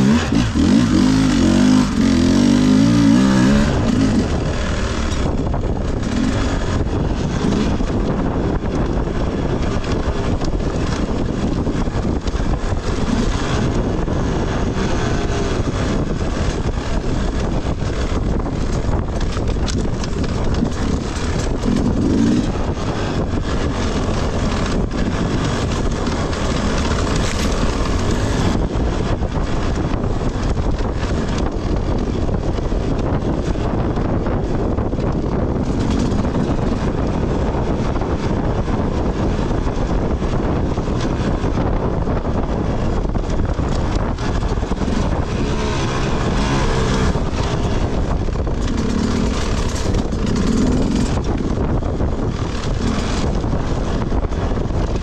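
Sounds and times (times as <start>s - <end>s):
dirt bike engine: 0.0s - 55.0s
wind on microphone: 0.0s - 55.0s
knocks and rattles: 15.9s - 38.4s, 42.9s - 55.0s.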